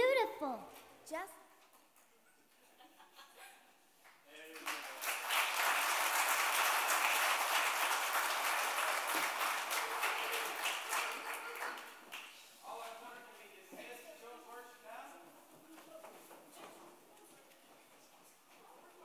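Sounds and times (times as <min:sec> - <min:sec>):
congregation applauding: 0:04.3 - 0:12.4.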